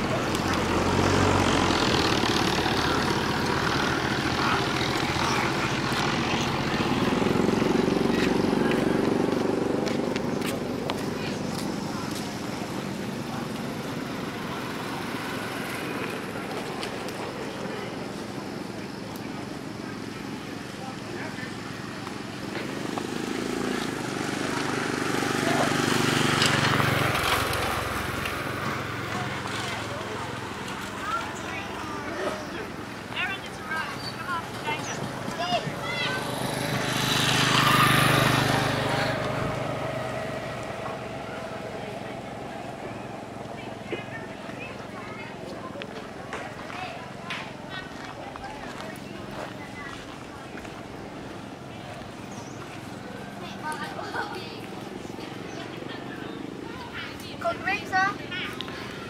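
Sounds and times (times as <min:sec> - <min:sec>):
indistinct voices: 0:00.0 - 0:59.0
motor vehicles passing: 0:00.0 - 0:59.0.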